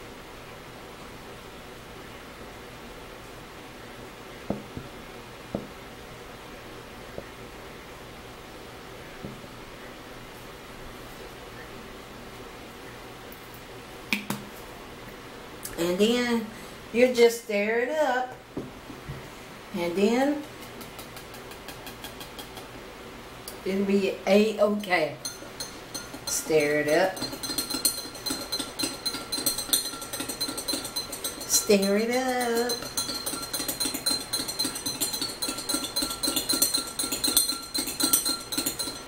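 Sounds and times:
spoon clinking against a cup: 25.2s - 39.0s
glass jar clicks: 32.6s - 39.0s.

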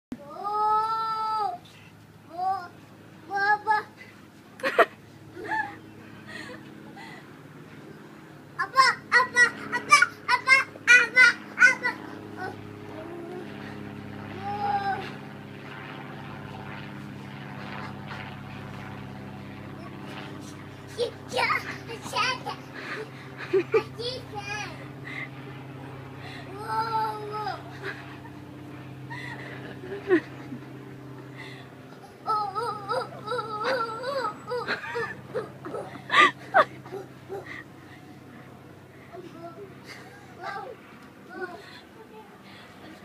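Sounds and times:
low mechanical motor hum: 0.1s - 43.0s.

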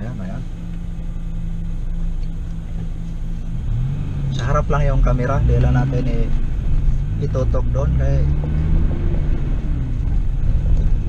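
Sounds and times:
car engine rumbling: 0.0s - 11.0s.

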